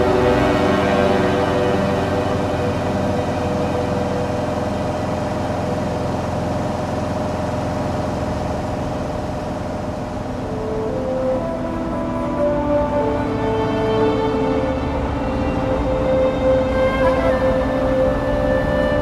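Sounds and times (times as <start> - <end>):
plane engine drone in cabin: 0.0 - 19.0
soft background music: 0.0 - 19.0.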